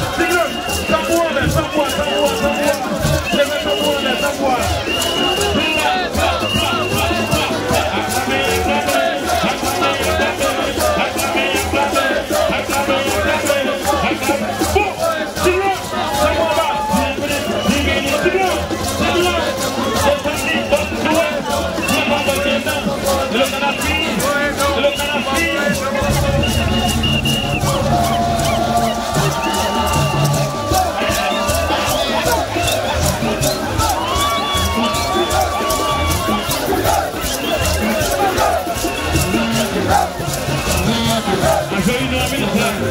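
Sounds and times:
band music: 0.0s - 42.9s
crowd shouting and singing: 0.0s - 42.9s
shaker pulse: 0.0s - 42.9s.

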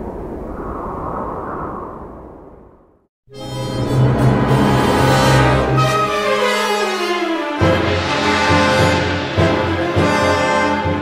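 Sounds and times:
deep rumble: 0.0s - 3.1s.

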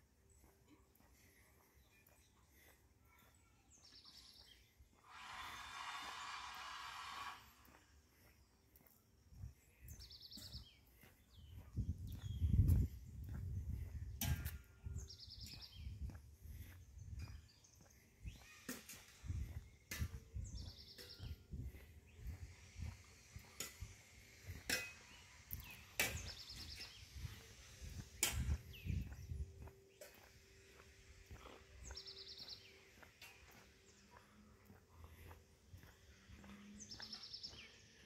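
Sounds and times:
footsteps on pavement: 0.0s - 38.0s.

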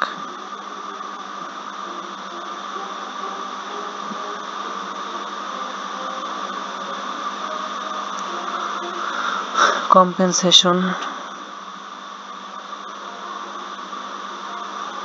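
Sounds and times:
background hiss: 0.0s - 15.0s
faint hum: 0.0s - 15.0s.

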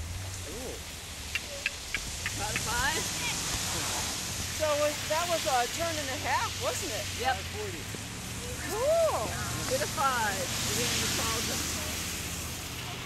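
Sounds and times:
steady rushing hiss: 0.0s - 13.0s
indistinct voices calling and talking: 0.4s - 13.0s.

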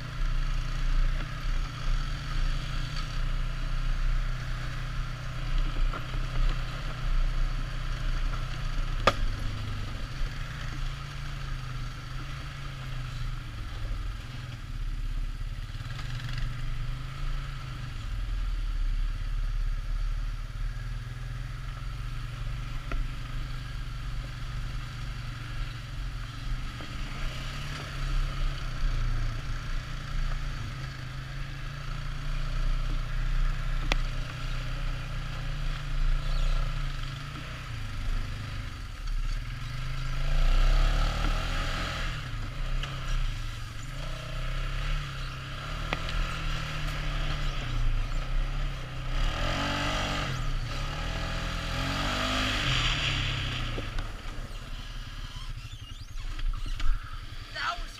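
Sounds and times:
all-terrain vehicle engine revving: 0.0s - 57.9s.

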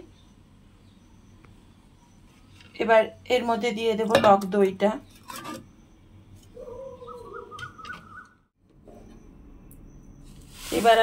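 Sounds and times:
bird calling: 5.4s - 10.3s.

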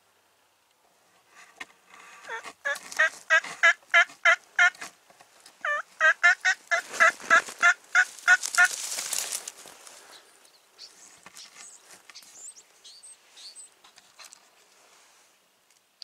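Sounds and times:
wild turkey yelping: 5.6s - 8.8s.

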